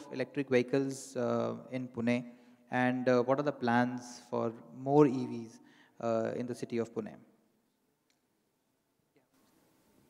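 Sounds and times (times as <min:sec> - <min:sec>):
man speaking: 0:00.0 - 0:07.2.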